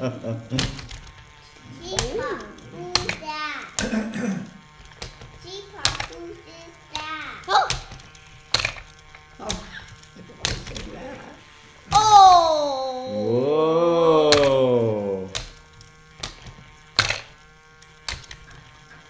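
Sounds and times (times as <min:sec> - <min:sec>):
plastic flipper clacks: 0:00.5 - 0:04.0, 0:04.7 - 0:06.2, 0:06.9 - 0:11.0, 0:15.4 - 0:19.0.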